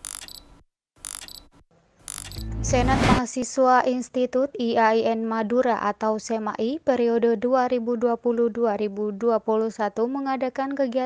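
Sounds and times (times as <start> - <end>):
mechanical clicking sound effect hits: 0.0 - 2.6.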